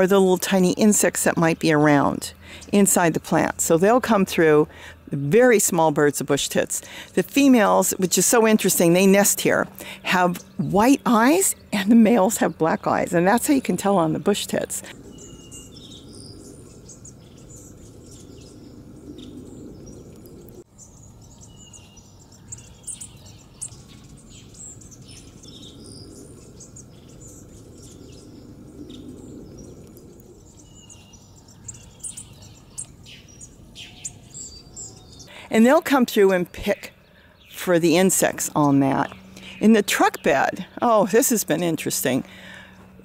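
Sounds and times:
high twittering bird calls: 0:00.0 - 0:43.0
low background hum: 0:00.0 - 0:43.0.

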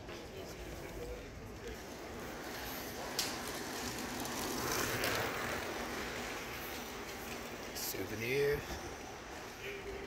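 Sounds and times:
outdoor street ambience: 0:00.0 - 0:10.0.

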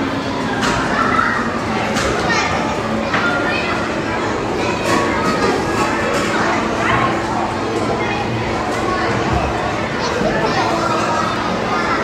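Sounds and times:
babble of voices: 0:00.0 - 0:12.0.

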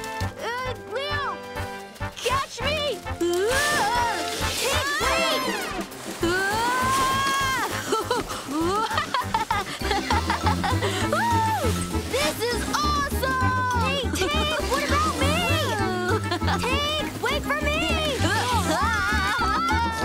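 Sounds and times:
lively background music: 0:00.0 - 0:20.0.

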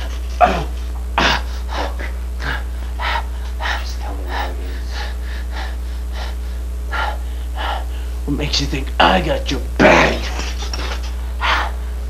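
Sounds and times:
person panting and gasping: 0:00.0 - 0:08.2, 0:10.7 - 0:12.0
steady low hum: 0:00.0 - 0:12.0.

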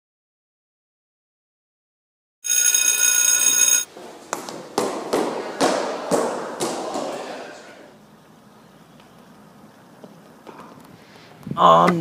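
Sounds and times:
electronic bell ringing: 0:02.4 - 0:03.9
echoing footsteps on stairs: 0:03.9 - 0:07.7.

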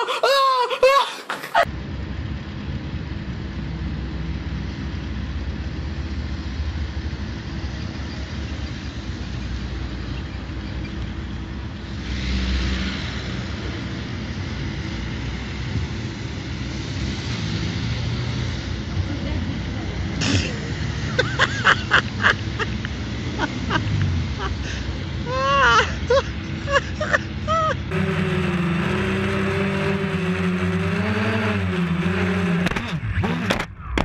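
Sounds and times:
traffic rumble: 0:00.0 - 0:34.0
car passing loudly: 0:11.8 - 0:33.7.

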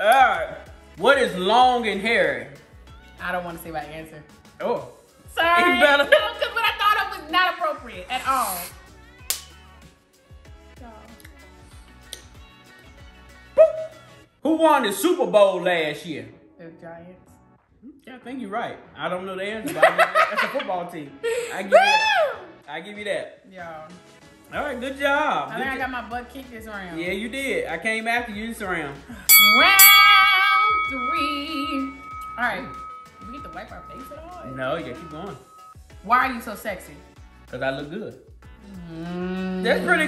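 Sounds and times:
quiet background music: 0:00.0 - 0:40.0
hand slapping a face: 0:09.2 - 0:09.6
bell struck: 0:29.3 - 0:35.8.

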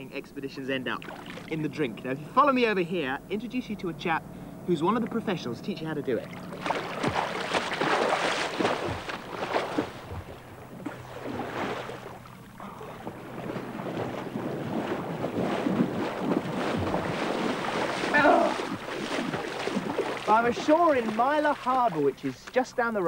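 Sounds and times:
person wading through shallow water: 0:00.9 - 0:01.8, 0:06.2 - 0:22.7
heavy splashing of sea water: 0:01.0 - 0:01.6, 0:06.2 - 0:22.4.

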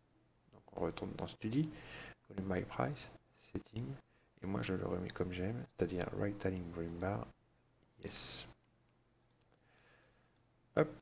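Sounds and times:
soft breath: 0:01.7 - 0:02.2, 0:09.6 - 0:10.5
computer mouse clicks: 0:06.8 - 0:07.2, 0:08.0 - 0:09.6, 0:10.2 - 0:10.5.

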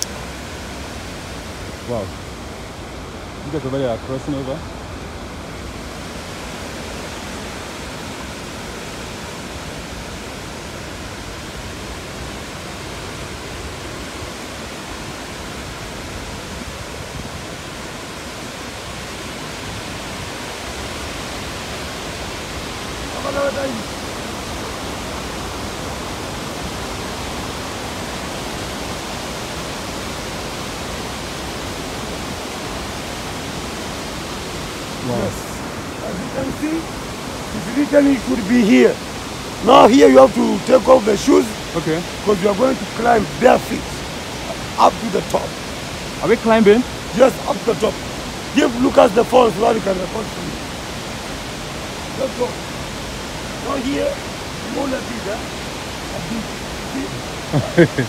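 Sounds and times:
waterfall rushing: 0:00.0 - 0:58.0.

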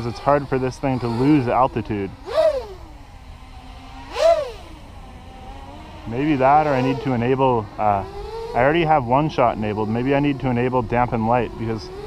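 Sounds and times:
quadcopter motor hum: 0:00.0 - 0:12.0
quadcopter motors whining: 0:00.0 - 0:12.0.

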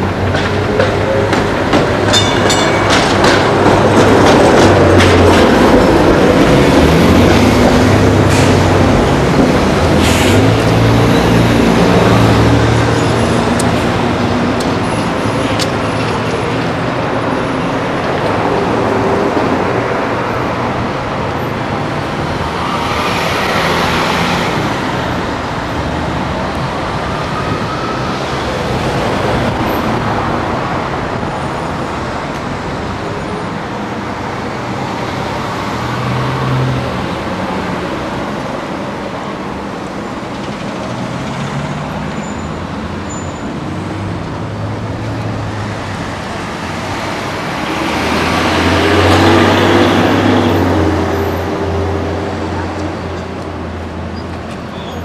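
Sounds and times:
cars passing: 0:00.0 - 0:55.0
road noise: 0:00.0 - 0:55.0
loud passing vehicle: 0:43.6 - 0:53.7.

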